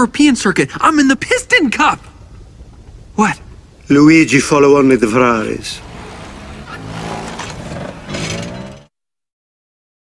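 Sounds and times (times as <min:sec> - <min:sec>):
small car engine running: 0:05.5 - 0:08.9.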